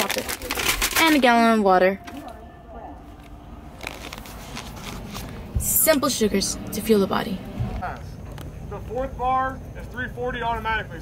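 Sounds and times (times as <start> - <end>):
car cabin hum: 2.0 - 9.4.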